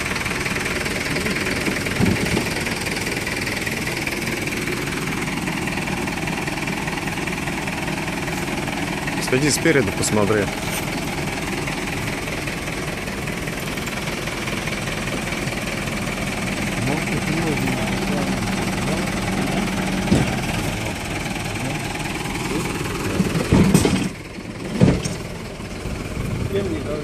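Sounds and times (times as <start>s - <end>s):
truck engine idling: 0.0s - 27.0s
sharp knocks: 20.0s - 20.5s.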